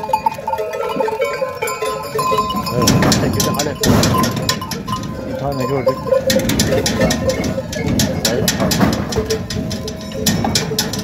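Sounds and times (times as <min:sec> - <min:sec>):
goat bells clanking: 0:00.0 - 0:11.0.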